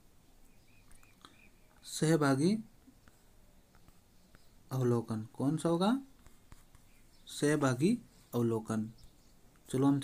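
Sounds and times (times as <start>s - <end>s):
faint high chirps: 0.2s - 2.0s
man speaking: 1.8s - 2.7s, 4.7s - 6.1s, 7.3s - 9.0s, 9.7s - 10.0s.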